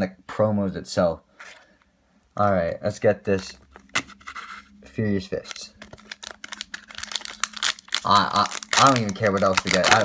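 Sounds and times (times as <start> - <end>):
foil wrapper crinkling and tearing: 5.4 - 10.0.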